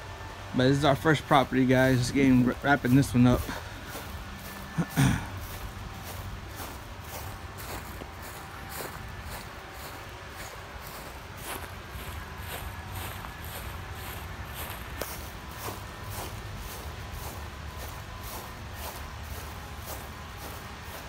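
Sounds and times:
footsteps on grass: 0.2 - 21.0.

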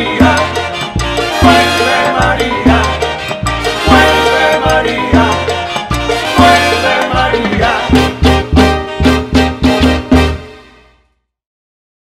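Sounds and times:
male singers singing together: 0.0 - 8.2
latin big band playing: 0.0 - 11.1.

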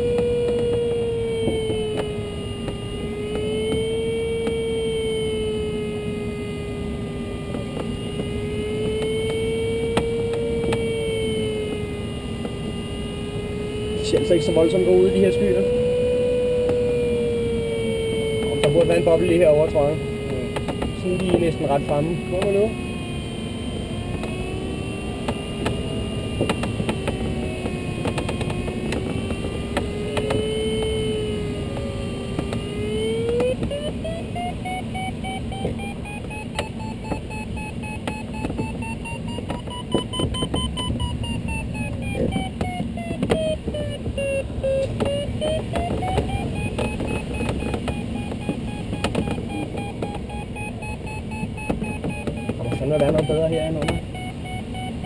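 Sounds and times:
variometer tone and beeping: 0.0 - 55.0.

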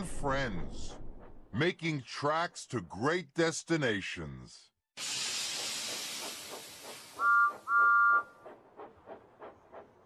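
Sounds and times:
steam hiss: 5.0 - 8.0
steam engine chuffing: 5.0 - 10.0
two-note steam whistle toots: 7.1 - 8.4.

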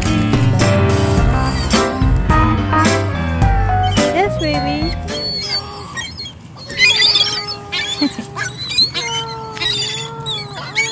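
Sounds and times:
faint background music: 0.0 - 5.5
gulls squawking: 0.2 - 10.9.

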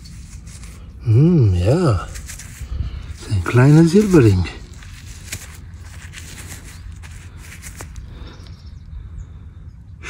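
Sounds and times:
hand rustling soil: 0.0 - 8.9.

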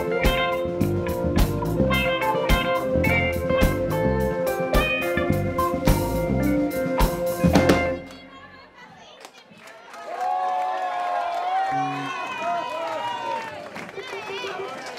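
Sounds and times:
live reggae band playing: 0.0 - 8.4
audience cheering and shouting: 7.8 - 14.9
people clapping: 8.8 - 14.9.

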